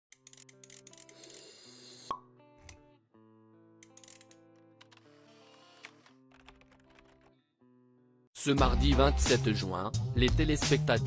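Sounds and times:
background music: 0.1s - 11.0s.

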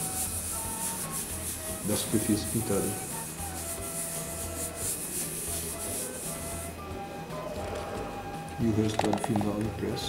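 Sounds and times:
hand rubbing paper: 0.0s - 6.8s.

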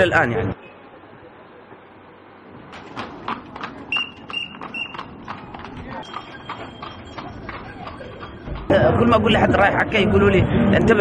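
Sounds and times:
horse hooves on stone: 2.6s - 9.7s.

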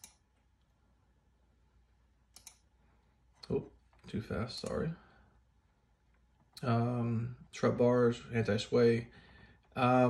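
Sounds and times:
computer mouse clicks: 0.0s - 0.2s, 2.3s - 2.7s.

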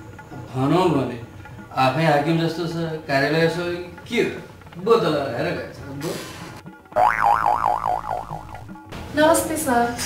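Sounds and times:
cartoon warbling tone: 7.0s - 8.7s.

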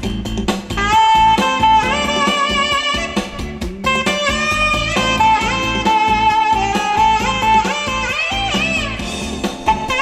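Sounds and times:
alto saxophone melody: 0.0s - 10.0s
backing accompaniment with a beat: 0.0s - 10.0s.

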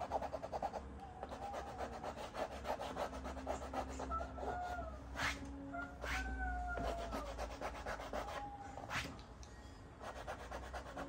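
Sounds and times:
pencil scratching on paper: 0.0s - 4.5s, 6.8s - 9.0s, 10.0s - 11.0s.

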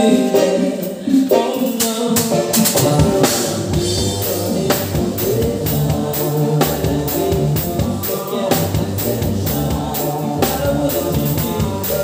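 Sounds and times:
drum and cymbal hits: 0.0s - 12.0s
person singing: 0.0s - 12.0s.

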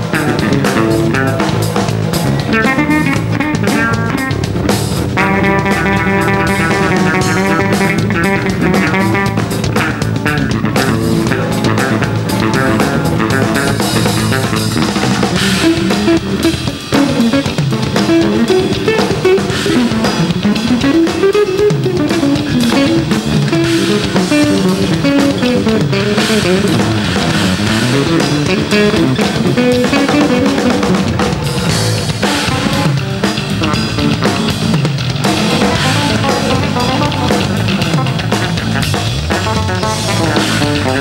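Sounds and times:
drum kit beat: 0.0s - 41.0s
electric bass guitars: 0.0s - 41.0s.

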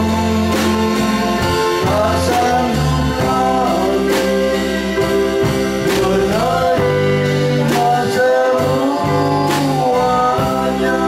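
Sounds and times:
live band playing pop song: 0.0s - 11.0s
man singing through microphone: 0.0s - 11.0s.

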